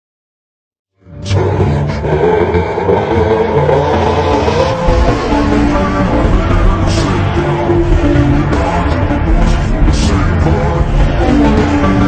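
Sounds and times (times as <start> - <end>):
dense rumbling: 1.4 - 12.0
sharp hit: 4.5 - 8.5.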